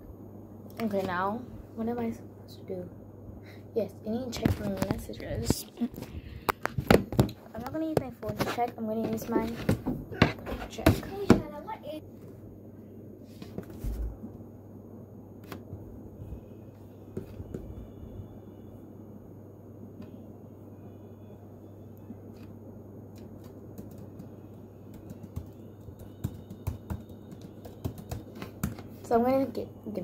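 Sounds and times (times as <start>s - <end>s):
steady low hum: 0.0s - 30.0s
fingers typing on a device: 23.3s - 28.4s.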